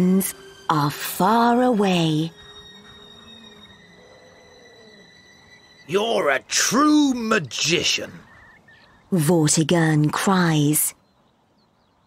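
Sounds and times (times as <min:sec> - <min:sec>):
soft wavering background music: 0:00.0 - 0:12.0.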